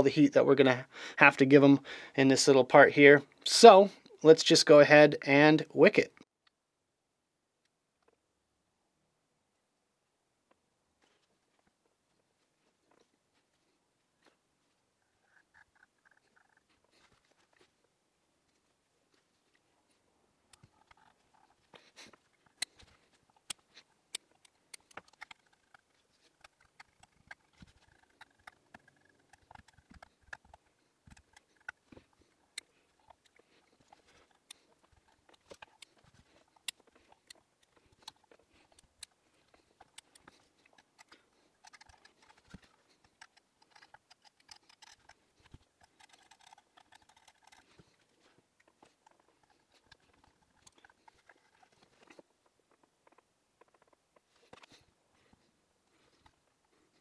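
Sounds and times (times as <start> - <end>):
small clicks and rustles of handling: 10.5 - 57.0
scissors trimming: 20.5 - 48.0.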